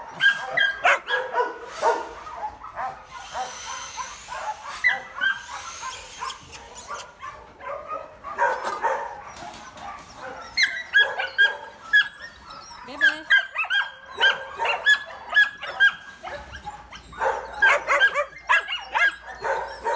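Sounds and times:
young dogs barking: 0:00.0 - 0:19.9.

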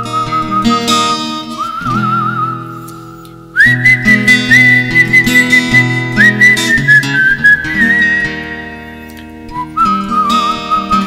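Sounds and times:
person whistling a melody: 0:00.0 - 0:08.8, 0:09.4 - 0:11.0
strummed acoustic guitar chords: 0:00.0 - 0:11.0.

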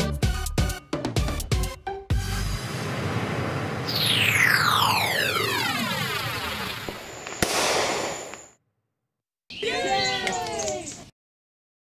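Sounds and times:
background music: 0:00.0 - 0:02.8
falling firework whistle: 0:03.8 - 0:08.6
crackling hiss: 0:06.6 - 0:08.6
firework bang: 0:06.8 - 0:08.6.

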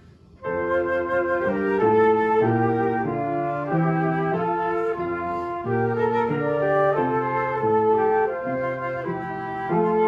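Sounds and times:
upright piano accompaniment: 0:00.0 - 0:10.0
two flutes playing a melody: 0:00.4 - 0:10.0.

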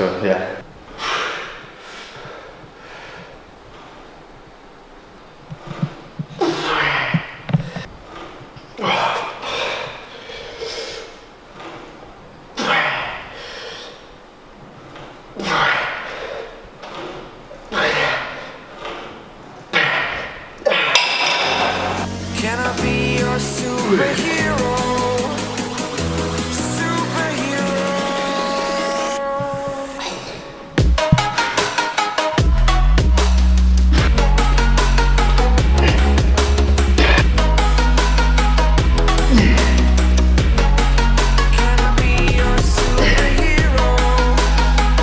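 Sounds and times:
music with bass line: 0:21.7 - 0:29.8, 0:30.8 - 0:45.0
man grunting and exhaling hard: 0:35.6 - 0:37.5, 0:39.2 - 0:40.4, 0:42.8 - 0:43.9.

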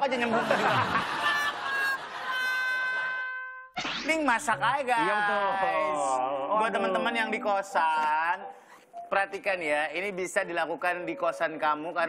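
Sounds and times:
man's voice: 0:04.1 - 0:12.0.

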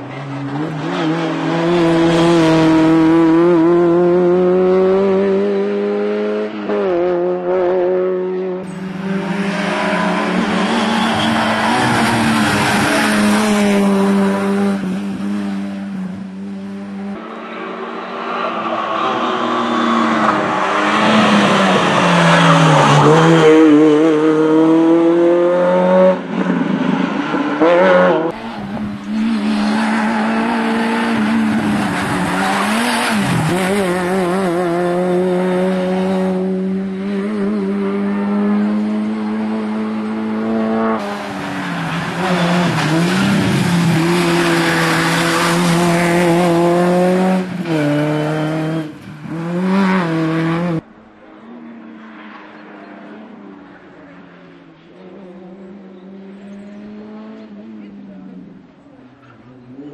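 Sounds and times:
rally car engine revving: 0:00.0 - 0:50.9.

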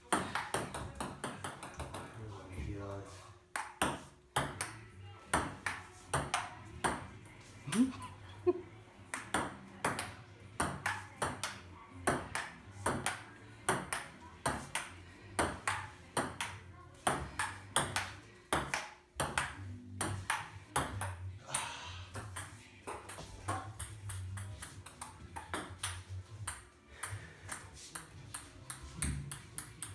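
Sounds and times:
ping-pong ball bouncing: 0:00.1 - 0:02.2, 0:03.5 - 0:07.1, 0:09.1 - 0:29.9.

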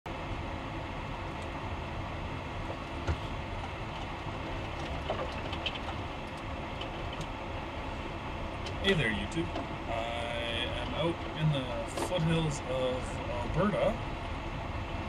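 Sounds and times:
vehicle cruising on highway: 0:00.1 - 0:15.0.

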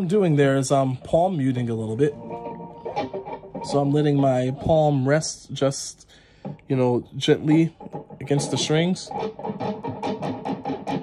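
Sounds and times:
palm-muted electric guitar strumming: 0:00.0 - 0:11.0.

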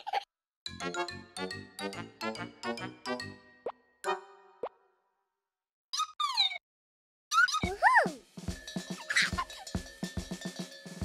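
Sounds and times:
cartoon music notes: 0:00.8 - 0:04.7, 0:07.3 - 0:11.0.

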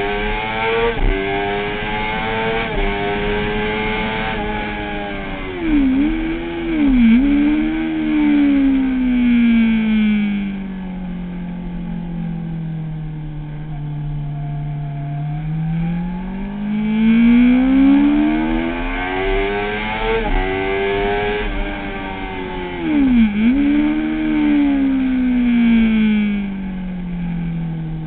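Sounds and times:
motorcycle engine revving: 0:00.0 - 0:28.0.

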